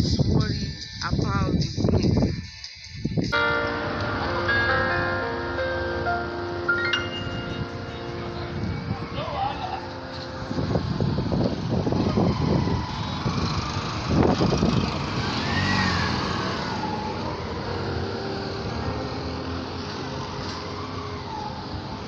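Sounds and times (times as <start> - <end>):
street traffic: 0.0 - 22.0.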